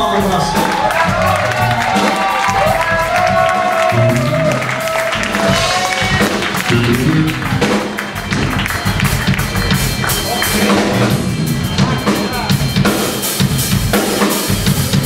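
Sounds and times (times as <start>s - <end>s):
drums and cymbals: 0.0s - 15.0s
electric guitar bending notes: 3.8s - 9.1s.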